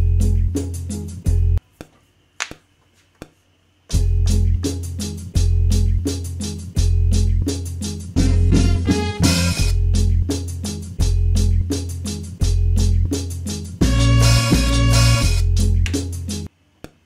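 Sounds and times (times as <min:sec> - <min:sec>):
deep bass line: 0:00.0 - 0:00.6, 0:04.0 - 0:06.1, 0:06.8 - 0:07.5, 0:08.2 - 0:10.4, 0:11.0 - 0:11.8, 0:12.4 - 0:13.2, 0:13.8 - 0:16.3
boom-bap beat: 0:03.9 - 0:16.5
drum and hi-hat hits: 0:03.9 - 0:16.5.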